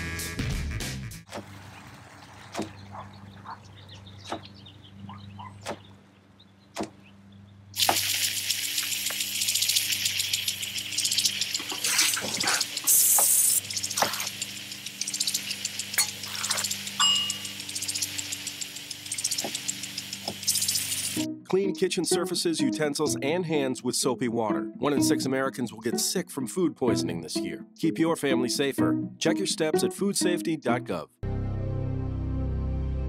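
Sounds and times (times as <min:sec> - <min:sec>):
knife chopping on wooden board: 0:06.8 - 0:07.0
sprinkler water spraying: 0:07.8 - 0:21.2.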